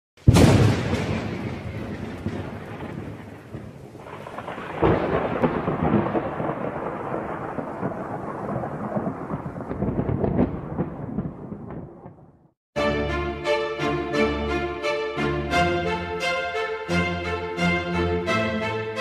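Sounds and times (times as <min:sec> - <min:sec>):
sharp thunder crack: 0:00.2 - 0:12.5
thunder rumbling: 0:00.2 - 0:12.5.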